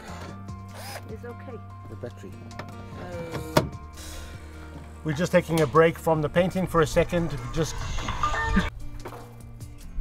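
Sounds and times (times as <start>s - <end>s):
cordless drill driving a screw: 0.7s - 1.1s.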